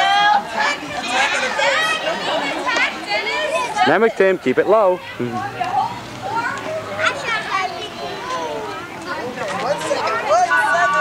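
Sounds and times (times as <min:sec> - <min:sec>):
crowd babble: 0:00.0 - 0:11.0
young children chattering: 0:00.0 - 0:11.0.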